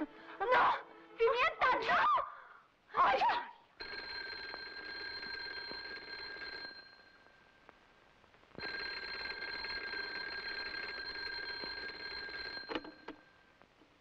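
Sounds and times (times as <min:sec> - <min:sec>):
telephone bell ringing: 0:03.8 - 0:07.5, 0:08.6 - 0:13.6.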